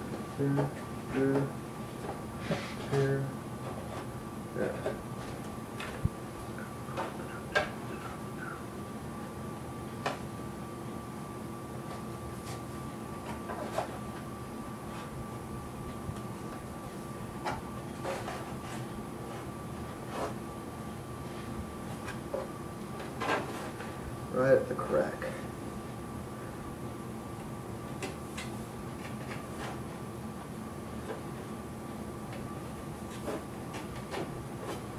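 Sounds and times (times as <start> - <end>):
faint hum: 0.0 - 34.9.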